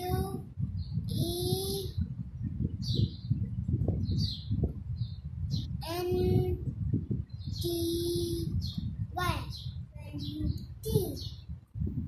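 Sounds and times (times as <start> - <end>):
child spelling in sing-song voice: 0.0 - 2.1, 5.7 - 6.8, 7.4 - 11.3
low rumble: 0.0 - 12.0.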